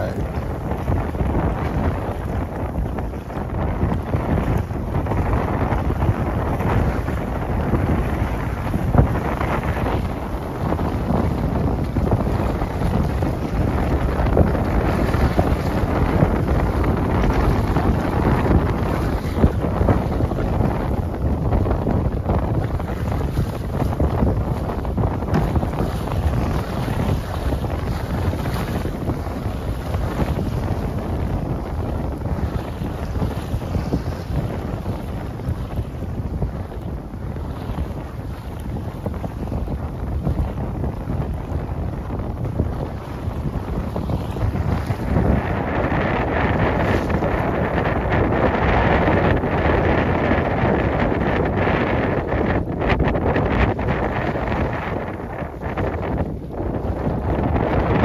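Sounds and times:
water splashing along hull: 0.0 - 58.0
wind buffeting microphone: 0.0 - 58.0.

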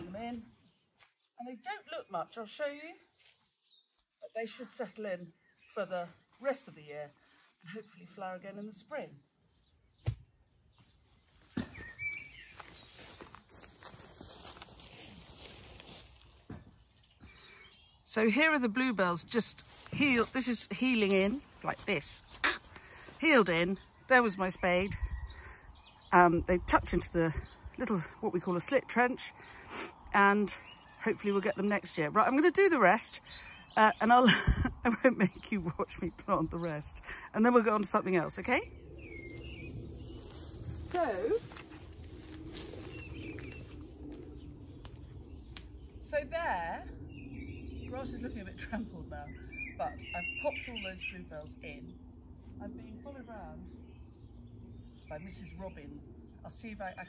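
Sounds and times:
faint songbird chirping: 0.0 - 57.0
quiet outdoor background: 0.0 - 57.0
boots walking through grass: 10.9 - 16.8, 19.2 - 23.8, 39.0 - 46.2.

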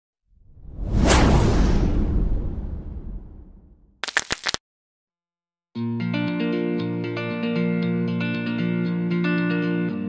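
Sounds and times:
whoosh sound effect: 0.4 - 3.8
deep low rumble: 0.4 - 3.9.

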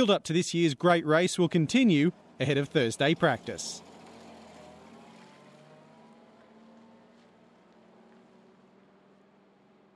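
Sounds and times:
vehicle engine moving away: 1.9 - 9.9.

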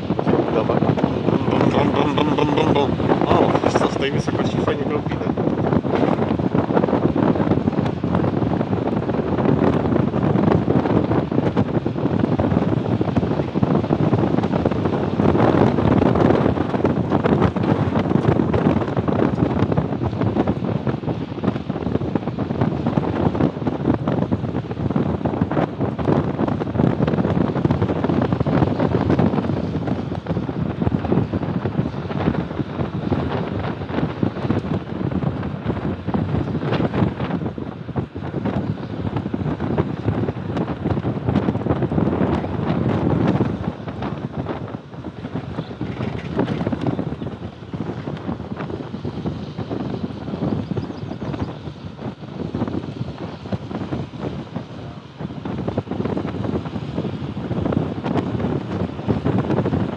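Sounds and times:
motorboat running noise: 0.0 - 59.9
wind buffeting microphone: 0.0 - 59.9.

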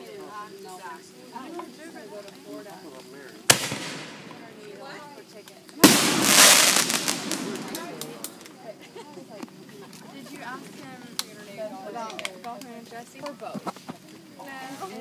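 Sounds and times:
fireworks crackling: 2.4 - 13.3
fireworks bangs: 3.5 - 4.8, 5.8 - 8.7.

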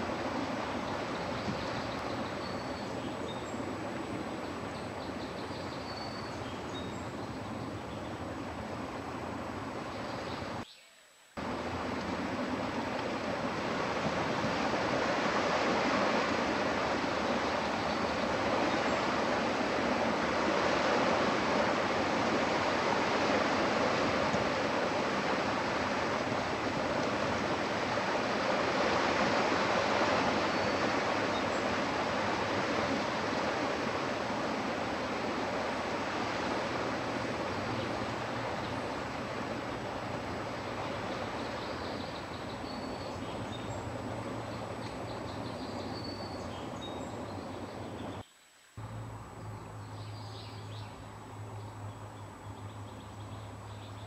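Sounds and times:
rushing outdoor background noise: 0.0 - 54.0.

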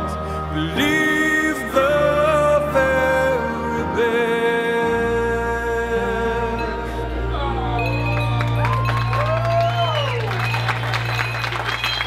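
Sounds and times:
slow song held chord: 0.0 - 12.0
guests applauding: 7.8 - 12.0.

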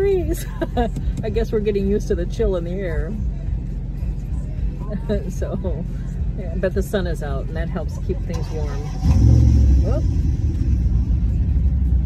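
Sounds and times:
truck engine starting and running: 0.0 - 12.0.

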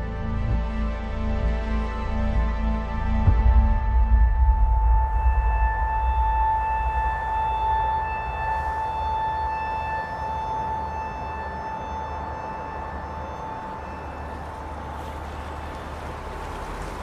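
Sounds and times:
low rumble: 0.0 - 11.0
high ringing tone: 4.2 - 15.7.

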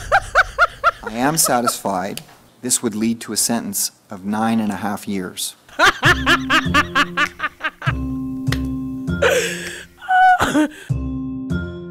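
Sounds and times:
rapid high laughter: 0.0 - 1.9.

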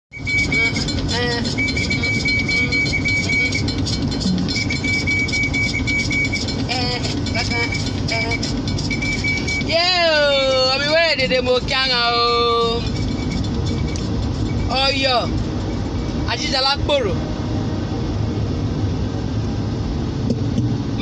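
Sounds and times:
high electronic beeps: 0.1 - 16.6
car cabin rumble: 0.1 - 21.0.

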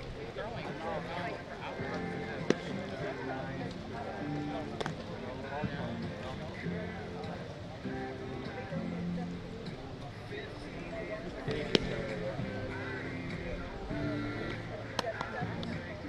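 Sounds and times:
spectators talking: 0.0 - 16.0
baseball bat crack: 2.4 - 2.8, 4.8 - 5.1, 11.5 - 12.4.

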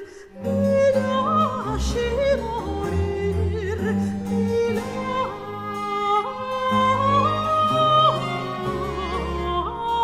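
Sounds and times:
soprano singing: 0.0 - 10.0
string ensemble: 0.0 - 10.0.

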